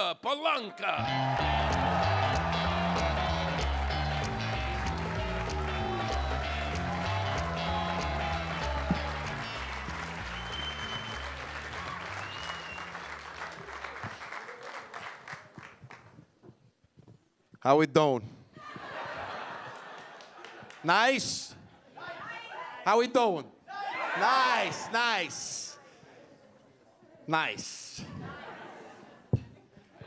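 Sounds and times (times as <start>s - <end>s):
walk-on music with bass line: 1.0s - 13.3s
audience applause: 1.0s - 16.1s, 19.3s - 20.9s.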